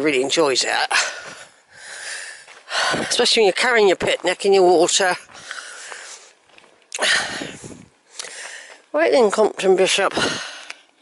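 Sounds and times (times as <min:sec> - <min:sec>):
person breathing hard: 0:00.9 - 0:03.1, 0:05.3 - 0:06.4, 0:07.0 - 0:08.8, 0:10.2 - 0:10.9.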